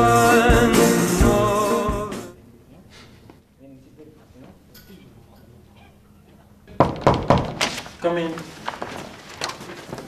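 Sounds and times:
knocks on wooden door: 6.8 - 7.6.

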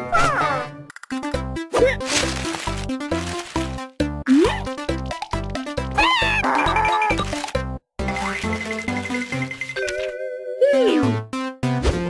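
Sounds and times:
cartoon background music: 0.0 - 12.0
scratchy rustling: 2.0 - 3.8
high wavering cartoon cry: 6.0 - 7.2.

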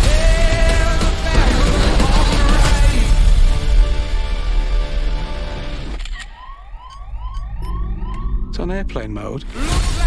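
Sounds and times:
dense trailer music and rumble: 0.0 - 6.0
rising electronic chirp: 6.4 - 8.9.

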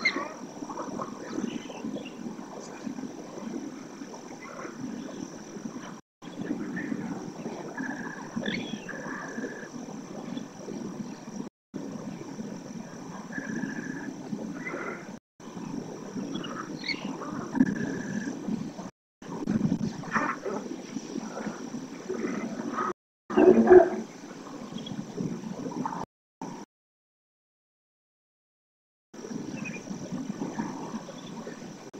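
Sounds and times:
bird whistles and chirps: 16.3 - 17.1.

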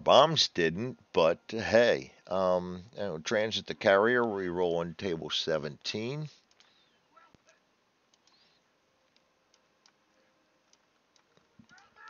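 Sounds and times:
faint computer mouse clicks: 6.4 - 6.8, 8.1 - 10.0.

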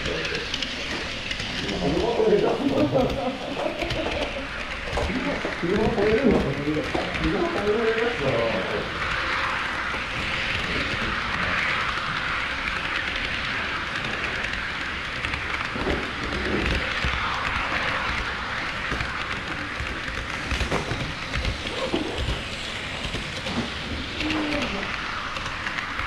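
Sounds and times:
model train wheels and motor rattling: 0.0 - 26.0.

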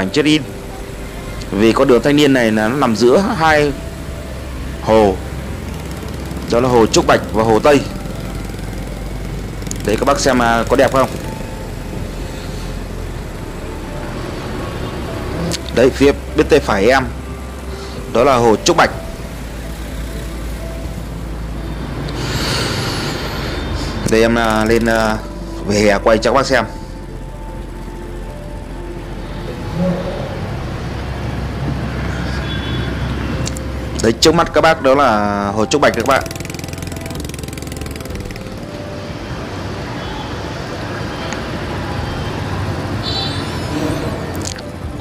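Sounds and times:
faint music: 0.0 - 45.0
motorbike engines rumbling: 0.0 - 45.0
road traffic hum: 0.0 - 45.0.

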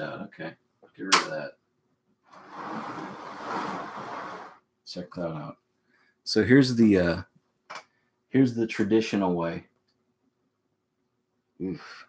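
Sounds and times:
tray sliding across shelf: 2.3 - 4.6.

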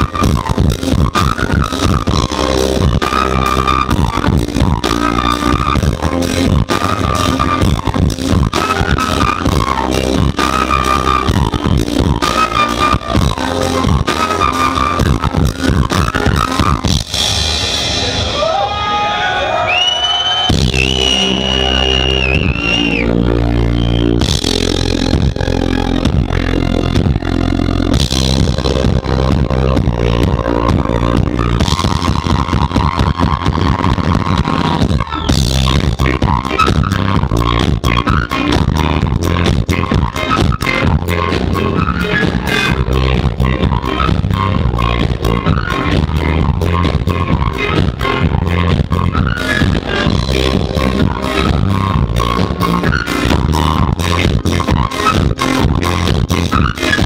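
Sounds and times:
beatboxing into a microphone: 0.0 - 17.0, 20.4 - 57.0
flute: 0.0 - 17.0, 18.2 - 25.4, 29.1 - 57.0
bass guitar: 0.0 - 57.0
drums: 0.0 - 57.0.

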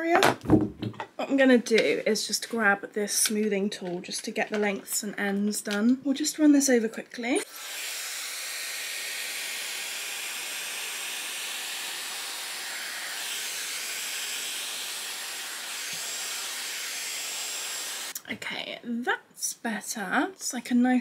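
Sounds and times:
hair styler blowing hot air: 7.4 - 18.2.

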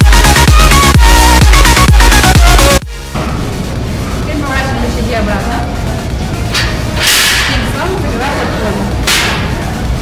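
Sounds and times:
electronic background music: 0.0 - 10.0.

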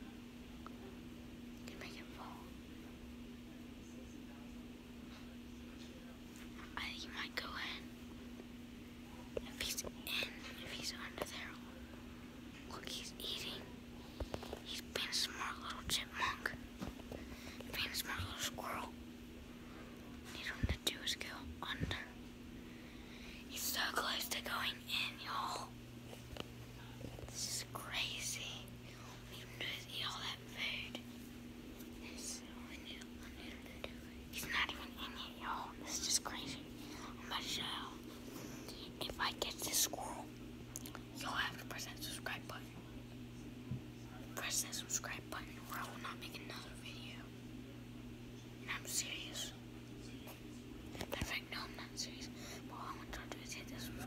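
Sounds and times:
steady low hum: 0.0 - 54.0
boy whispering: 1.6 - 2.6, 6.5 - 7.9, 9.4 - 11.8, 12.6 - 13.8, 14.4 - 16.6, 17.6 - 19.0, 20.3 - 22.2, 23.5 - 25.8, 27.1 - 31.0, 31.8 - 40.3, 41.1 - 42.7, 44.3 - 47.3, 48.6 - 49.6, 50.9 - 54.0.

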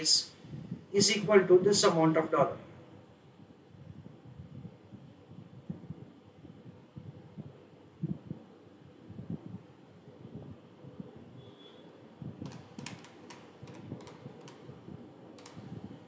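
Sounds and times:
sharp taps or clicks: 12.4 - 14.7, 15.4 - 15.8.

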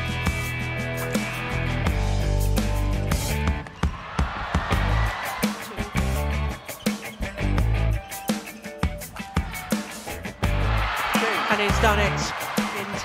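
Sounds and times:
rock music: 0.0 - 13.0.

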